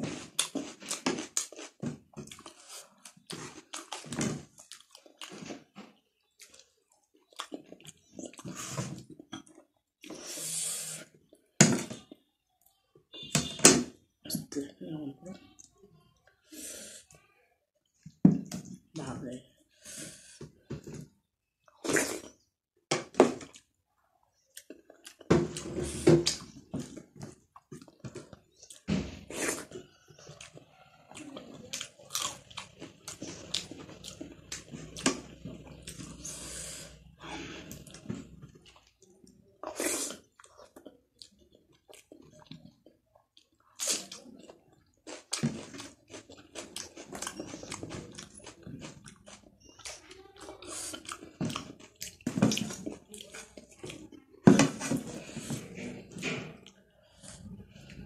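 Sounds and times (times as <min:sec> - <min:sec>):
wet chewing and mouth clicks: 0:00.2 - 0:10.3, 0:23.4 - 0:26.6, 0:27.2 - 0:36.3, 0:37.6 - 0:54.4.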